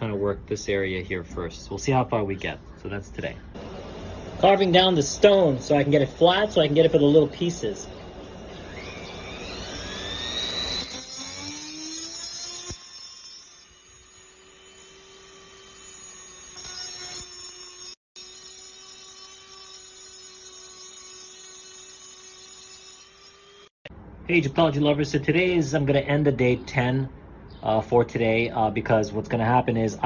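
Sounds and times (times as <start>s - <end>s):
rotary tool motor whine: 8.0s - 23.7s.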